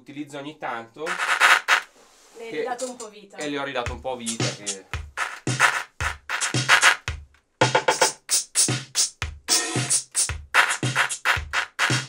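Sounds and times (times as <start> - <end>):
drum machine beat: 1.1 - 1.9, 3.4 - 12.0.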